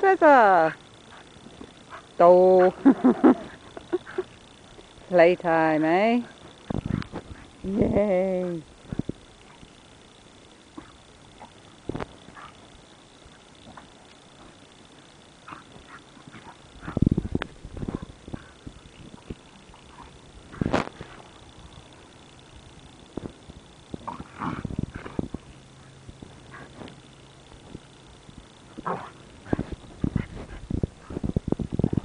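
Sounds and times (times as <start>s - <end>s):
dogs play-fighting noises: 0.7s - 5.0s, 5.8s - 7.6s, 8.4s - 9.8s, 10.5s - 22.3s, 23.1s - 32.0s.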